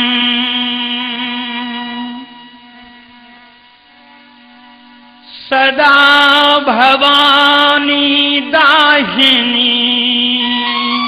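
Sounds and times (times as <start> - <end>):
sustained musical drone: 0.0 - 11.0.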